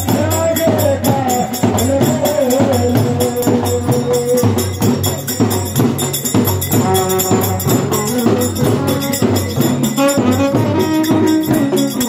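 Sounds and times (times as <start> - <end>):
hand drums beating: 0.0 - 12.0
jingles: 0.0 - 12.0
wind instrument melody: 0.0 - 12.0.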